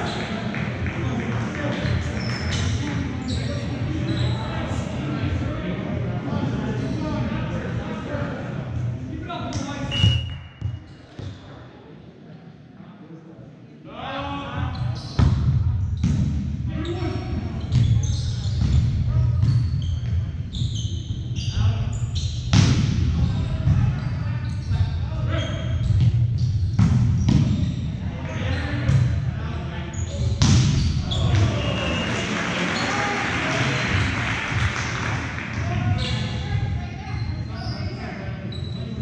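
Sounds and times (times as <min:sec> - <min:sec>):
spectators' voices: 0:31.0 - 0:39.0.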